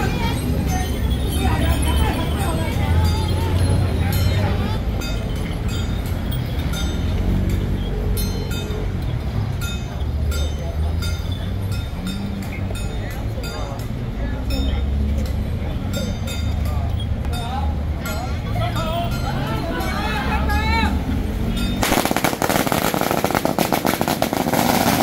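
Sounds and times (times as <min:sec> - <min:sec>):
crowd voices: 0:00.0 - 0:25.0.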